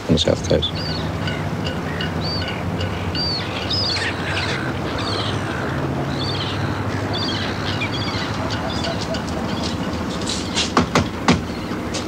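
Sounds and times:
birds chirping: 0.0 - 12.0
low steady drone: 0.0 - 12.0.

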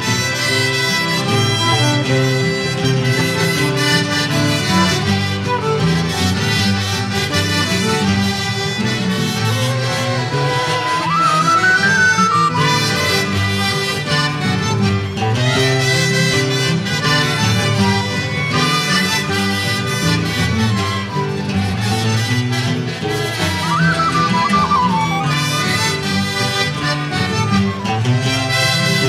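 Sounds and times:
accordions mandolins and guitars: 0.0 - 29.0
flute melody: 0.0 - 29.0
trumpet melody: 0.0 - 29.0.

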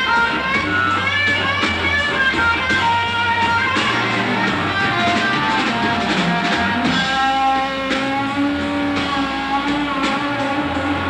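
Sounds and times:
blues-rock band playing: 0.0 - 11.0
distorted electric guitar: 0.0 - 11.0
drum strokes: 0.0 - 11.0.

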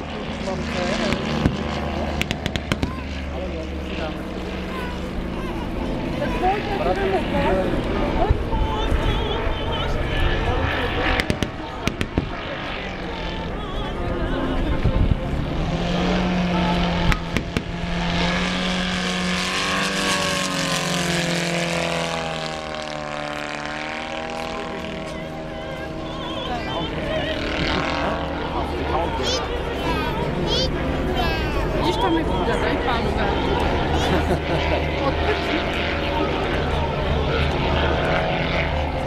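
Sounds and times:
voices in background: 0.0 - 19.3, 23.4 - 39.0
crowd chatter: 0.0 - 39.0
distant propeller aircraft drone: 0.0 - 39.0.

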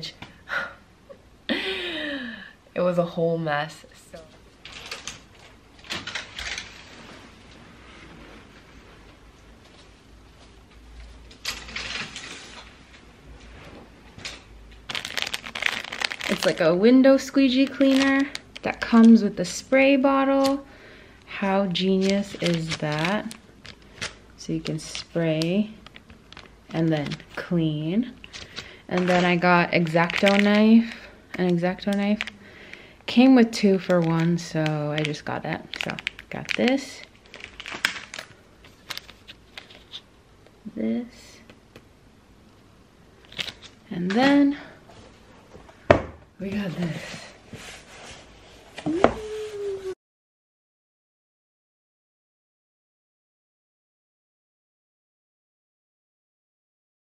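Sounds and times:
curtain runners sliding and rattling: 4.6 - 9.2, 11.0 - 14.5
plastic packaging clicks and crinkles: 11.2 - 12.8, 14.2 - 16.8, 17.4 - 19.2, 21.7 - 27.5, 28.2 - 40.6, 43.2 - 44.2.

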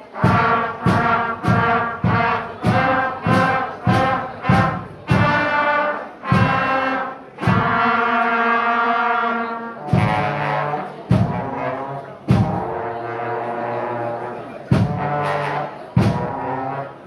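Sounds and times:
school wind band playing a carol: 0.0 - 17.0.

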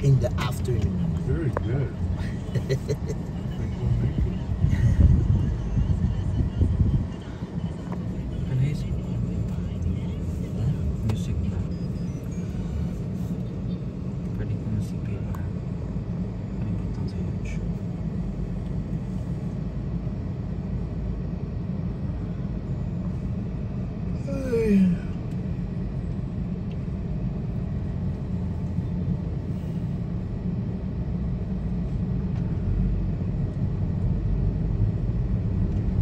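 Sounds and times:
car driving rumble: 0.0 - 36.0.

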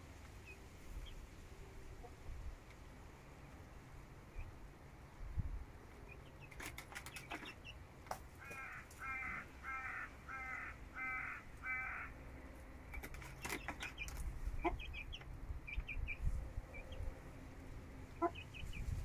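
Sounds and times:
chicks peeping: 5.8 - 12.1, 12.8 - 19.0
harsh bird call: 8.4 - 12.2.

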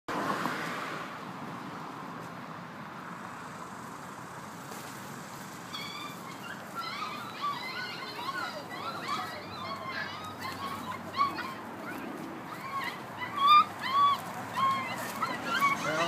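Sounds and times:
puppies crying: 5.7 - 16.0.

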